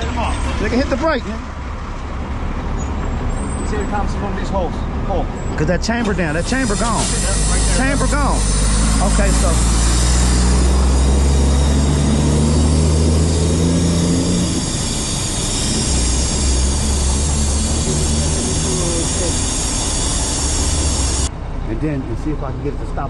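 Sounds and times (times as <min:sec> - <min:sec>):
truck engine idling: 0:00.0 - 0:23.0
air brake hissing: 0:06.3 - 0:21.3.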